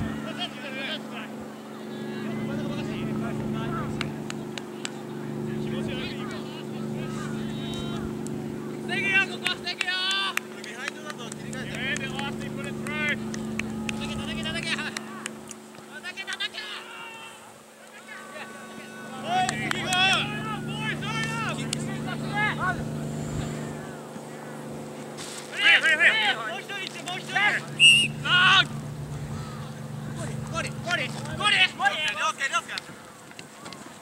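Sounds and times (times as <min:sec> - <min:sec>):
footballers shouting: 0:00.0 - 0:34.0
low mechanical hum: 0:00.0 - 0:34.0.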